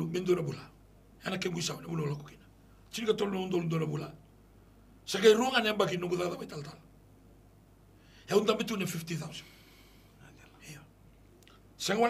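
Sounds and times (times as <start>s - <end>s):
man speaking: 0.0s - 4.2s, 5.1s - 6.8s, 8.3s - 9.5s, 10.2s - 10.9s, 11.8s - 12.0s.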